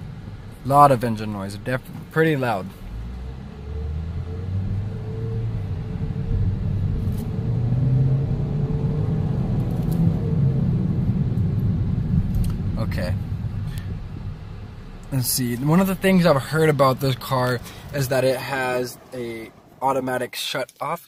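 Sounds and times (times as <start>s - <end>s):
car engine accelerating hard: 2.4s - 20.2s.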